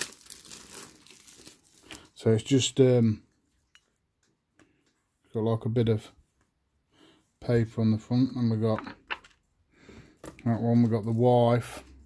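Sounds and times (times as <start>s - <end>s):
plastic film crinkling: 0.0s - 2.2s.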